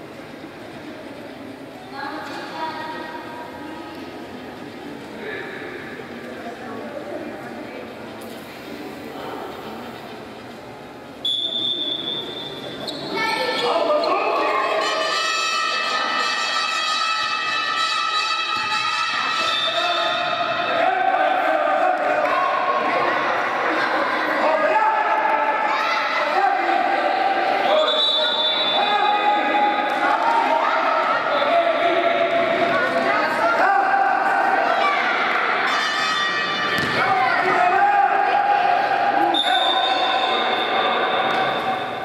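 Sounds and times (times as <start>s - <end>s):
referee's whistle blast: 11.2s - 12.6s, 27.7s - 29.8s.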